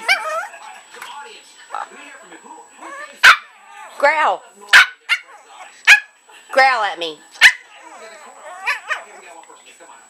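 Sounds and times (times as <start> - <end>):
puppy barking: 2.9 - 3.6, 4.7 - 6.2, 7.4 - 9.1.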